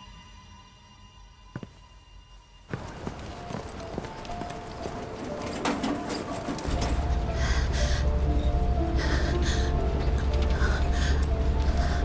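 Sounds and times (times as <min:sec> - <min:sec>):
footsteps on paved street: 0:01.5 - 0:01.9, 0:02.6 - 0:05.7.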